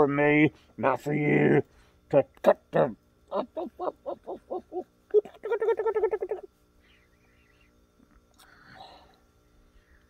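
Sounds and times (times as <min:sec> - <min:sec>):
man laughing maniacally: 0:03.3 - 0:06.5.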